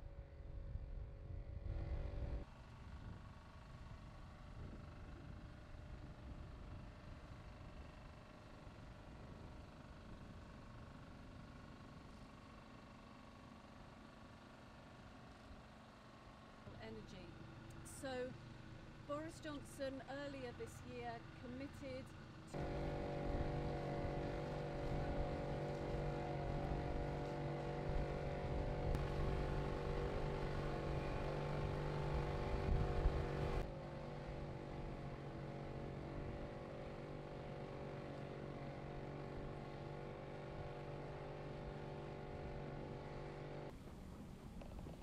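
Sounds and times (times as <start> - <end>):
boat engine running: 15.6 - 45.0.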